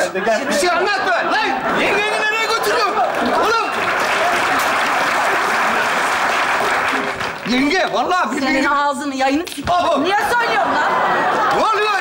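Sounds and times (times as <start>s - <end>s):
audience applauding: 1.8s - 8.2s.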